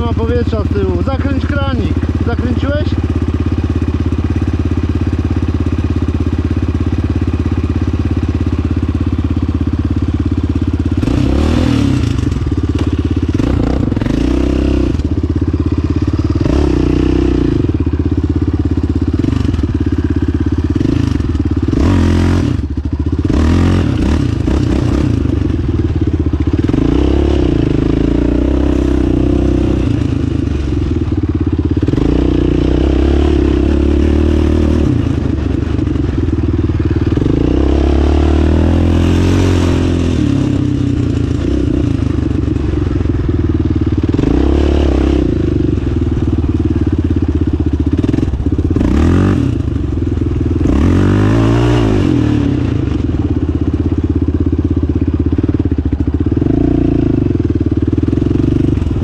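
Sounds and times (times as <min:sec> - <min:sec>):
quad engine revving: 0:00.0 - 0:08.5, 0:10.3 - 0:53.8, 0:56.0 - 0:59.0.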